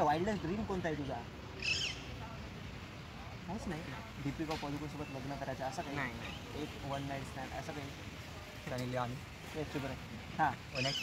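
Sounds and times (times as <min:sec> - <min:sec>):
bird warbling call: 0:01.6 - 0:02.2, 0:10.7 - 0:11.0.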